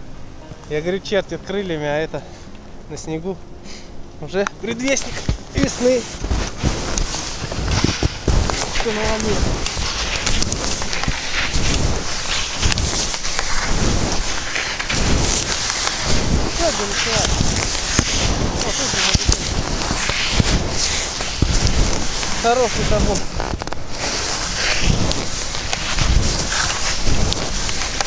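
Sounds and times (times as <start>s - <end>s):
footsteps crunching in snow: 4.6s - 28.0s
wind buffeting microphone: 4.7s - 28.0s.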